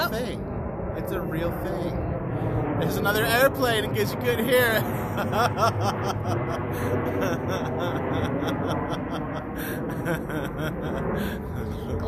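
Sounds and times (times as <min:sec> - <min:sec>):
airplane flying overhead: 0:00.0 - 0:12.0.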